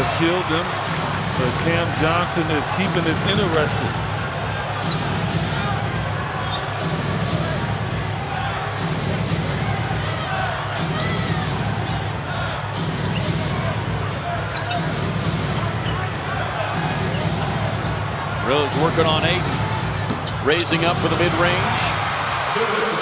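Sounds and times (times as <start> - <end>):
arena crowd noise: 0.0 - 23.0.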